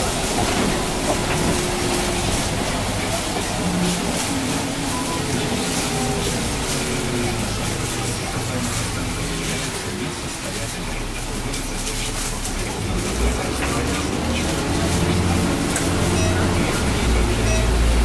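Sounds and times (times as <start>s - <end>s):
bus drivetrain and tyre noise: 0.0s - 18.0s.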